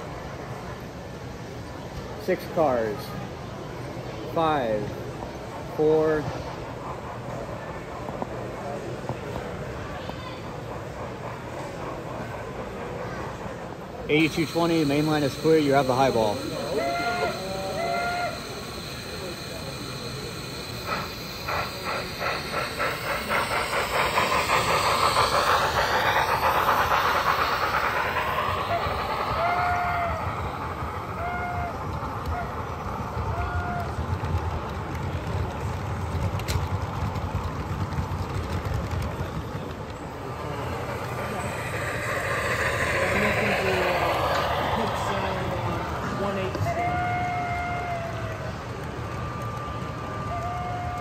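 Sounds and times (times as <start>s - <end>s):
toy train wheels clicking: 14.1s - 51.0s
crowd murmur: 15.7s - 51.0s.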